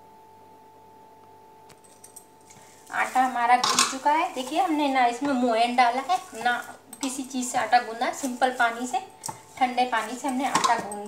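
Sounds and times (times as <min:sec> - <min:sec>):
faint hum: 0:00.0 - 0:11.0
clinks and taps in metal bowl: 0:02.5 - 0:11.0.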